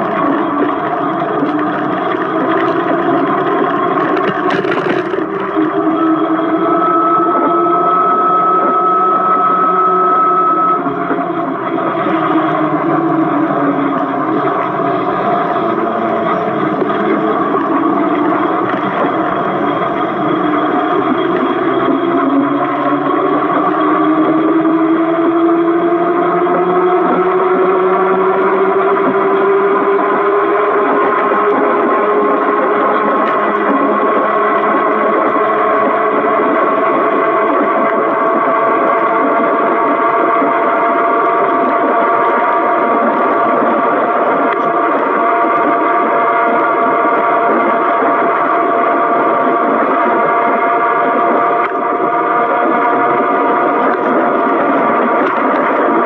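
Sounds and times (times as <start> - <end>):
electric bike motor whine: 0.0 - 56.0
road noise: 0.0 - 56.0.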